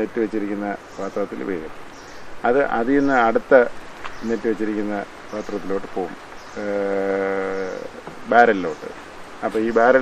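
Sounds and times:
man speaking: 0.0s - 1.8s, 2.4s - 10.0s.

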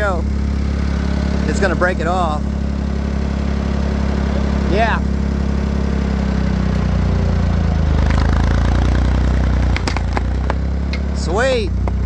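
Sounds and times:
tractor engine under load: 0.0s - 12.0s
wooden pole cracking: 9.7s - 11.1s.

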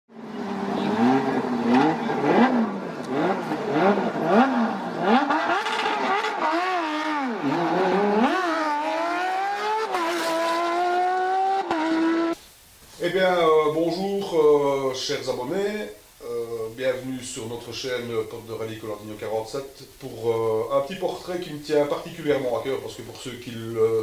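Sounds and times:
racing car engine revving: 0.2s - 12.4s.

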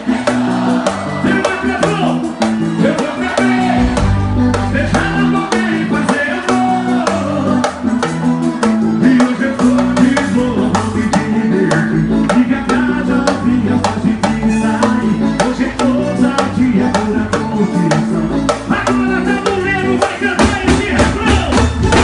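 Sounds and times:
live band music: 0.0s - 22.0s
steady drum beat: 0.0s - 22.0s.

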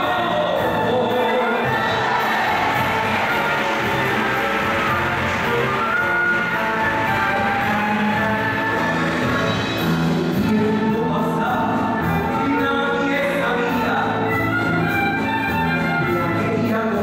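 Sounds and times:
live band playing: 0.0s - 17.0s
audience cheering: 1.6s - 9.4s.

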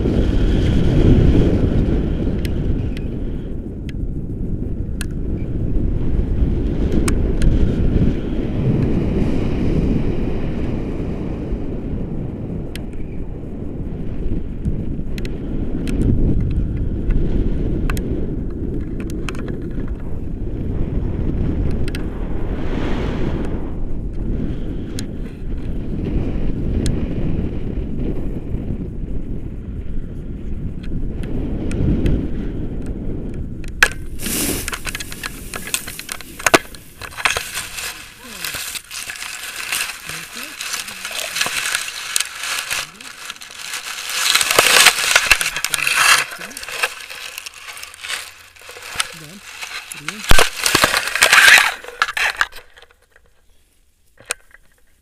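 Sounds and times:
wind buffeting microphone: 0.0s - 53.2s
rustling hiss: 33.9s - 54.2s
grass brushing microphone: 34.0s - 52.9s.

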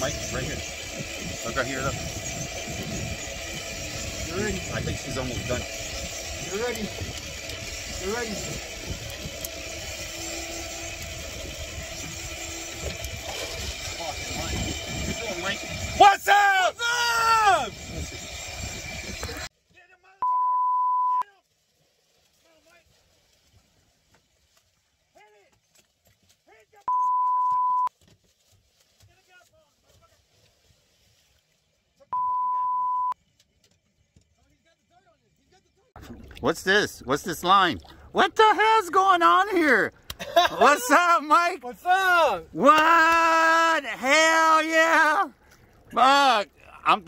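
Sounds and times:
boat engine: 0.0s - 19.5s, 32.0s - 47.0s
sea noise: 0.0s - 19.5s, 36.0s - 47.0s
excited shouting: 15.9s - 17.8s, 38.2s - 45.3s
steady beeps: 20.2s - 21.2s, 26.9s - 27.9s, 32.1s - 33.2s.

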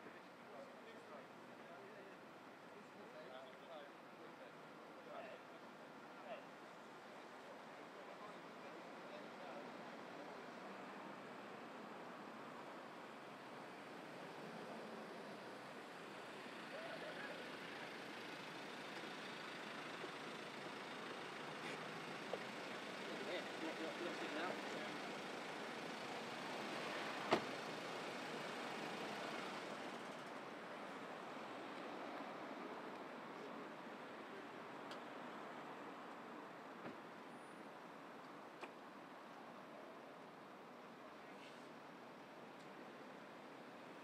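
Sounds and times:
faint distant voices: 14.6s - 37.6s.

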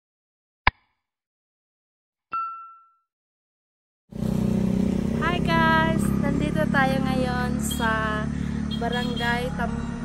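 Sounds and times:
low engine hum: 4.2s - 10.0s.

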